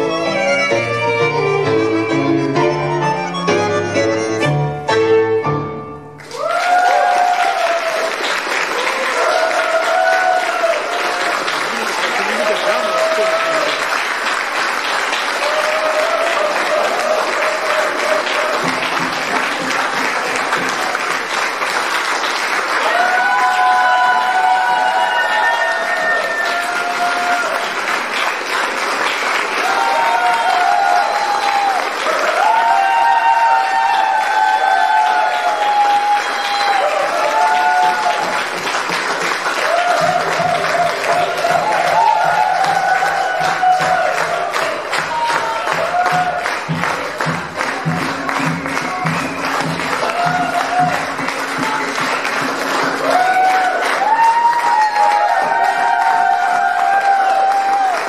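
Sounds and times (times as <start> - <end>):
audience applauding: 6.1 - 58.0.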